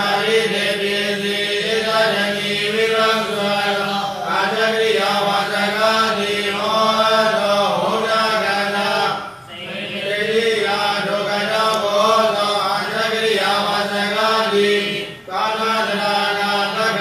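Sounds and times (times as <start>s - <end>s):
man chanting: 0.0s - 17.0s.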